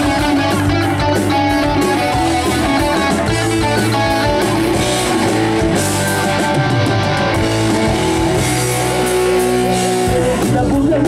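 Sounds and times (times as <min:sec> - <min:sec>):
live rock band playing loudly: 0:00.0 - 0:11.0.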